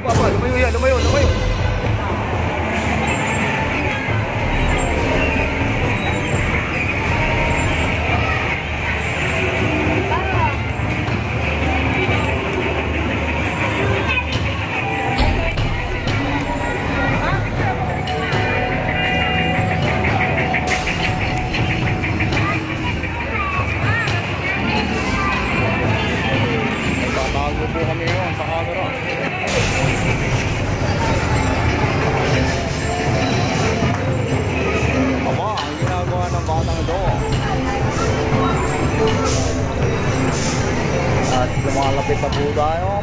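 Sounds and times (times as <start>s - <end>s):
arcade game machines: 0.0s - 43.0s
crowd noise: 0.0s - 43.0s
music: 0.0s - 43.0s.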